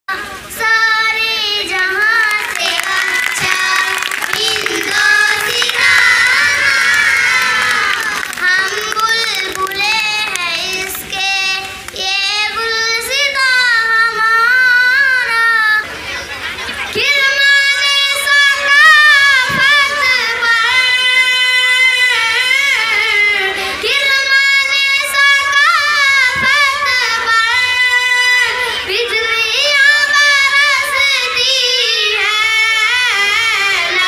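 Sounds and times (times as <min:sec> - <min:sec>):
children singing in chorus: 0:00.4 - 0:15.8, 0:17.0 - 0:34.0.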